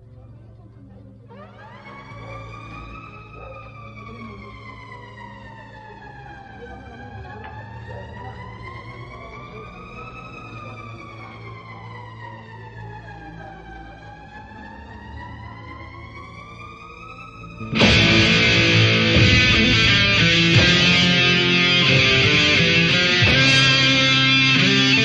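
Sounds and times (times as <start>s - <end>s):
siren-like wailing tone: 1.3s - 25.0s
distorted electric guitars: 17.7s - 25.0s
heavy metal band playing: 17.7s - 25.0s.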